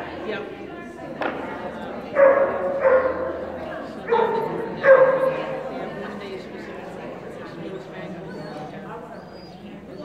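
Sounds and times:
dog barking: 2.2s - 3.4s, 4.0s - 5.6s.

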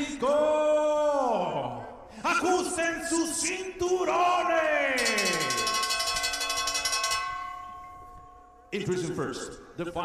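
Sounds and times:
boxing ring bell ringing: 5.0s - 8.7s.

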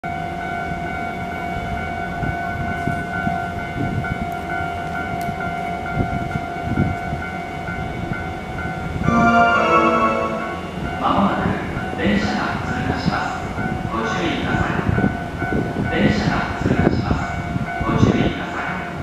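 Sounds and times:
electric train rumbling: 0.1s - 19.0s
train horn chord: 9.0s - 11.0s
level crossing alarm ringing: 9.0s - 11.1s.

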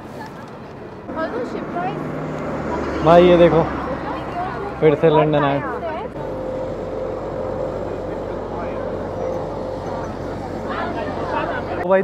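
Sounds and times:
cars and buses passing: 0.0s - 12.0s
engine hum: 0.0s - 12.0s.

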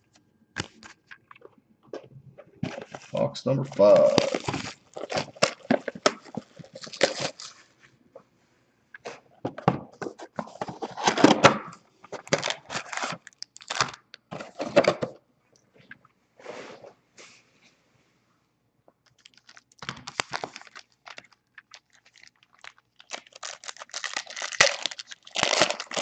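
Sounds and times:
foil packs rustling: 2.6s - 7.6s, 12.2s - 14.8s, 19.3s - 26.0s.

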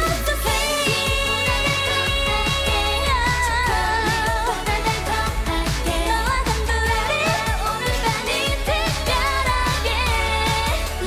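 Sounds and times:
electronic beat and bass: 0.0s - 11.0s
woman singing: 0.0s - 11.0s.

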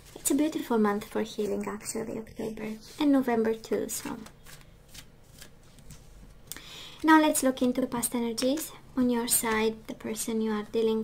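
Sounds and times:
cards being shuffled: 3.9s - 6.4s.

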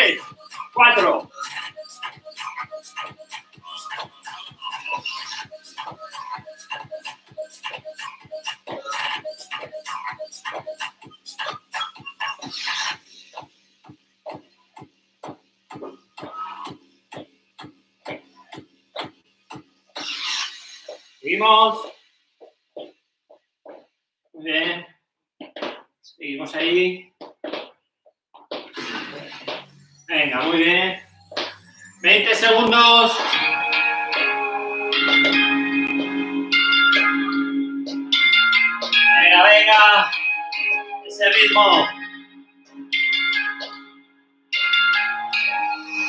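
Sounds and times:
workout music: 0.0s - 23.0s, 28.5s - 46.0s.

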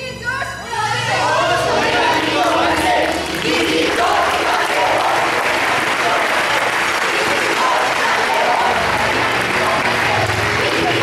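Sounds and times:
voices: 0.0s - 11.0s
audience applauding: 1.5s - 11.0s.

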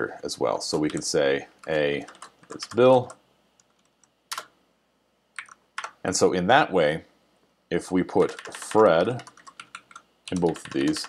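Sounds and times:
keyboard keystrokes: 5.4s - 6.0s, 8.3s - 11.0s.

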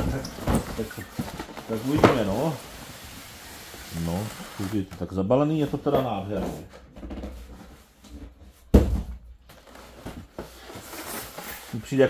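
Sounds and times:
scraping and handling noises: 0.0s - 8.7s, 9.4s - 12.0s
thump on polystyrene box: 8.7s - 9.2s.

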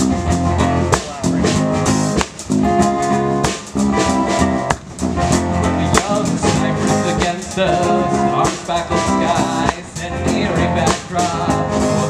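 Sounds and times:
bass guitar: 0.0s - 12.0s
drum and cymbal hits: 0.0s - 12.0s
electric guitar: 0.0s - 12.0s.

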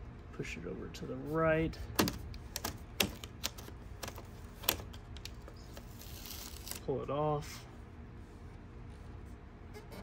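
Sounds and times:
fingers clicking and tapping vinyl: 2.0s - 5.5s
tape peeling hiss: 5.7s - 6.8s.

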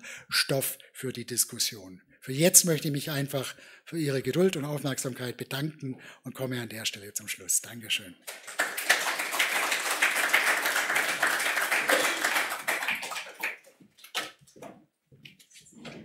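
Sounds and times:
audience applauding: 8.2s - 14.4s.

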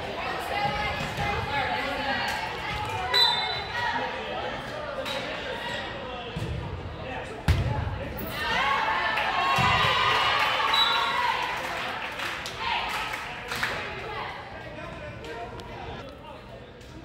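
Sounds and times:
crowd voices: 0.0s - 17.0s
volleyball hits echoing in gym: 7.4s - 8.7s, 9.4s - 10.4s.

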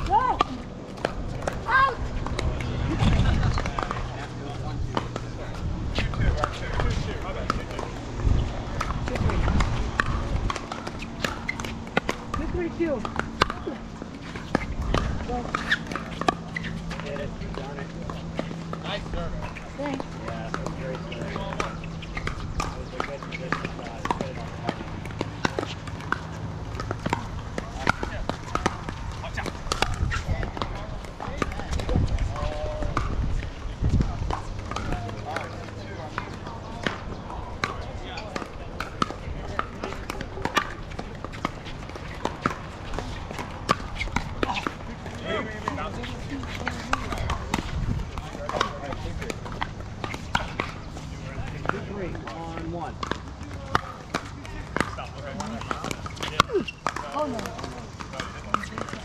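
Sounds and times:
people's voices: 0.0s - 59.0s
paddles striking plastic balls: 6.0s - 59.0s.

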